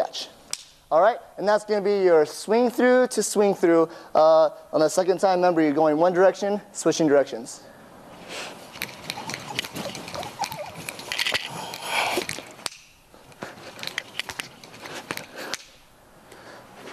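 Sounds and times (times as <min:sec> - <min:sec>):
nunchuck sticks clicking: 0:00.5 - 0:00.8, 0:08.6 - 0:15.9.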